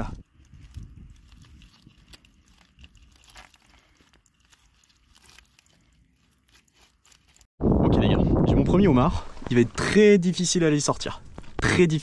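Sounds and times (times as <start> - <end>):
metal hook crackling in wet kelp: 0.2 - 7.5.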